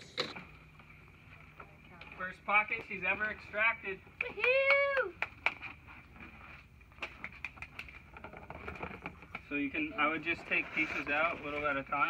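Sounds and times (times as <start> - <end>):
faint background hum: 0.0 - 12.0.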